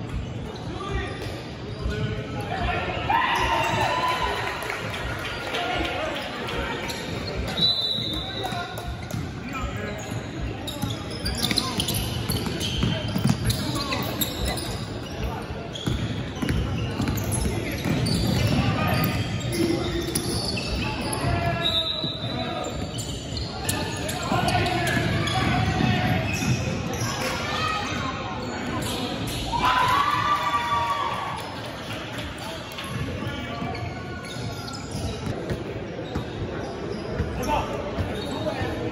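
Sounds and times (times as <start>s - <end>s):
basketball bouncing on court: 8.8s - 9.4s, 10.8s - 14.7s, 15.7s - 21.4s.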